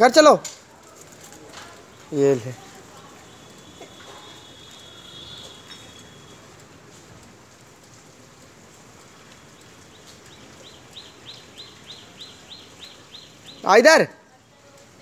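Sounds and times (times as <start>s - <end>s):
bird chirping: 1.9s - 6.6s, 9.0s - 13.8s
thin high whistle: 3.3s - 6.5s.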